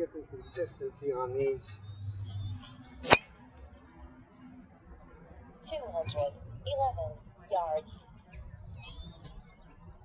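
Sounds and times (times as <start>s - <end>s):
golf driver striking ball: 3.1s - 3.3s.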